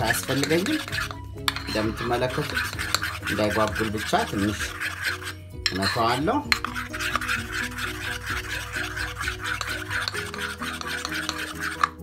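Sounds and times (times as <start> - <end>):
background music: 0.0 - 12.0
metal spoon stirring batter: 0.0 - 12.0.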